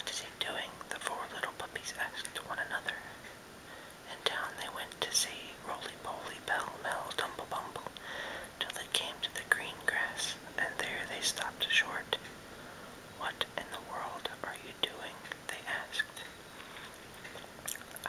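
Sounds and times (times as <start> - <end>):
man whispering: 0.0 - 3.2, 4.1 - 8.0, 8.6 - 12.2, 13.2 - 16.3.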